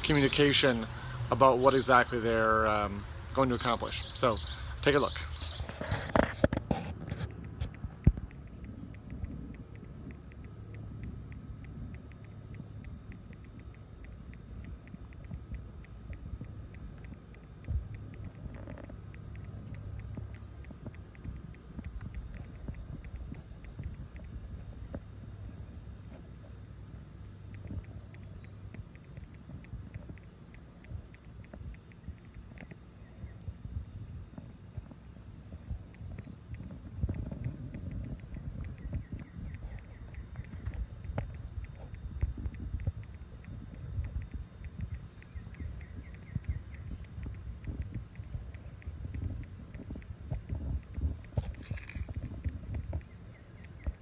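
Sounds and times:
steady low rumble: 0:00.0 - 0:54.0
faint clicks: 0:05.4 - 0:54.0.

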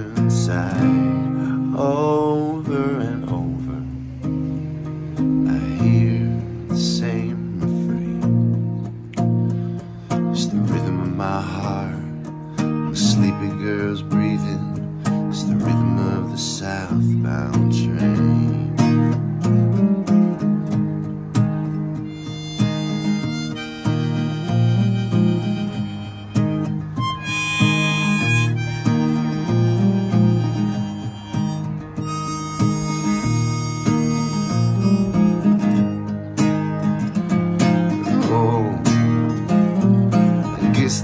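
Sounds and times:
strummed acoustic guitar: 0:00.0 - 0:41.0
harmonica solo: 0:22.0 - 0:36.9.

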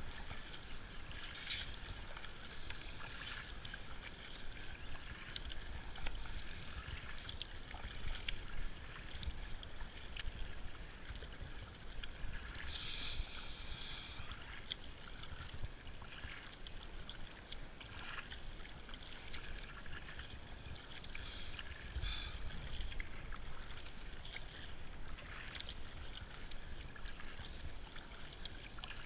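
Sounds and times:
paddle splashing in water: 0:00.0 - 0:29.0
hiss of moving kayak: 0:12.4 - 0:14.6, 0:21.1 - 0:23.0.

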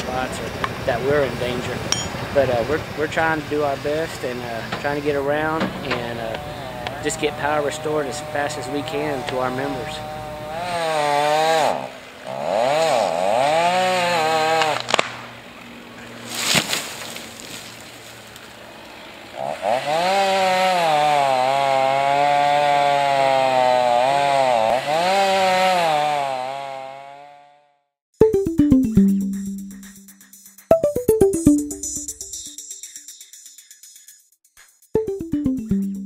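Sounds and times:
chainsaw revving: 0:04.2 - 0:15.9, 0:18.5 - 0:27.6.

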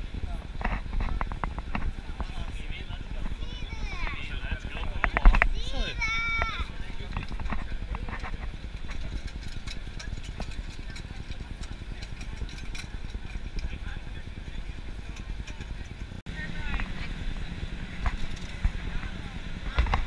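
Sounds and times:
low traffic rumble: 0:00.0 - 0:20.0
voices of passing people: 0:00.0 - 0:20.0.

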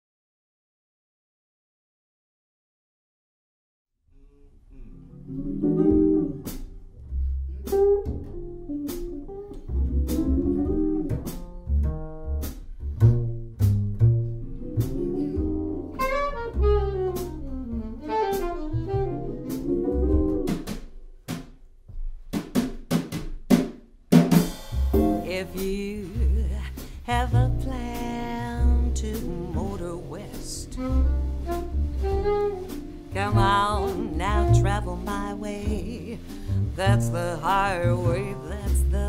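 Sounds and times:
double bass: 0:04.5 - 0:20.7, 0:24.5 - 0:39.0
drum kit with rimshots: 0:08.8 - 0:09.4, 0:10.0 - 0:14.0, 0:14.8 - 0:39.0
melodic lead line: 0:25.0 - 0:25.5.

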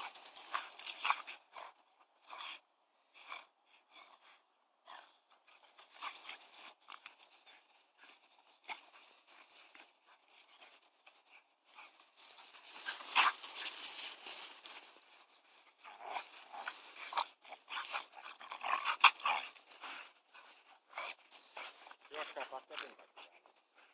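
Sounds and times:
dogs scuffling in snow: 0:05.6 - 0:23.4.

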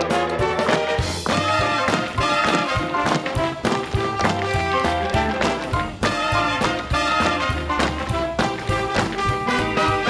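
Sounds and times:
swing orchestra music: 0:00.0 - 0:10.0
tap shoes striking stage: 0:00.0 - 0:10.0.

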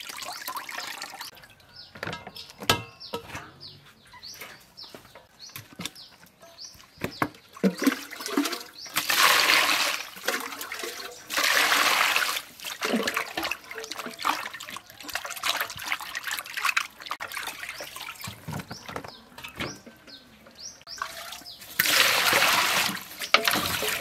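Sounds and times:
water gushing into steel bowl: 0:00.0 - 0:01.6, 0:07.6 - 0:18.8, 0:20.9 - 0:24.0.

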